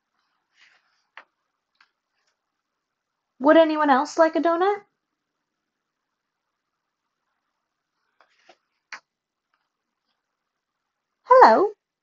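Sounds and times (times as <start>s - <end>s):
book page turning: 8.1s - 8.8s.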